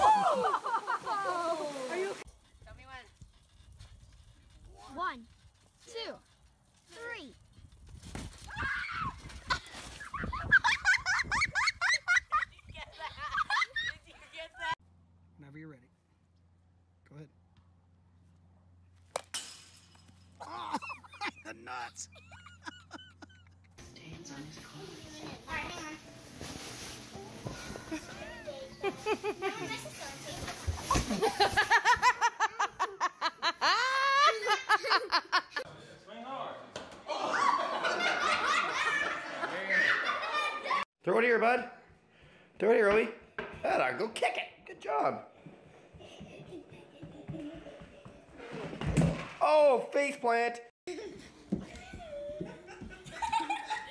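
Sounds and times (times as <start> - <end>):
children laughing and squealing: 0.0 - 2.2, 8.5 - 14.8, 20.4 - 23.7, 27.9 - 35.7, 37.1 - 40.9, 45.6 - 48.8, 50.9 - 53.9
bodies thumping on trampoline: 30.2 - 31.7.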